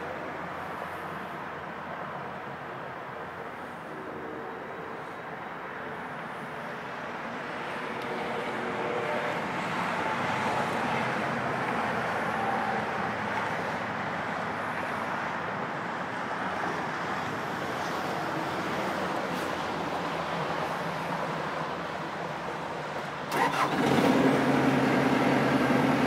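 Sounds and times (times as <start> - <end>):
diesel engine running: 23.3 - 26.0.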